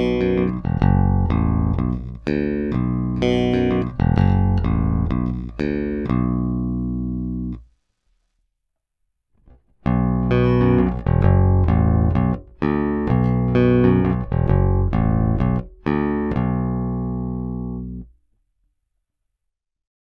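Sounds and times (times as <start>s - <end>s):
electric bass playing a riff: 0.0s - 7.6s, 9.8s - 18.1s.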